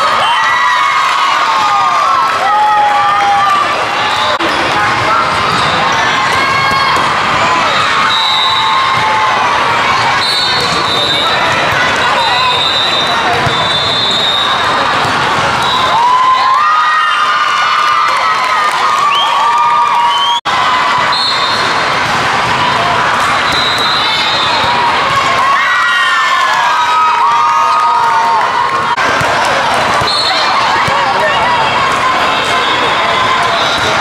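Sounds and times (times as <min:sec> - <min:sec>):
people shouting and cheering: 0:00.0 - 0:34.0
crowd din: 0:01.1 - 0:16.6, 0:20.2 - 0:34.0
volleyballs struck and bouncing: 0:04.4 - 0:08.1, 0:08.8 - 0:13.9, 0:14.6 - 0:16.0, 0:20.9 - 0:25.6, 0:28.9 - 0:34.0.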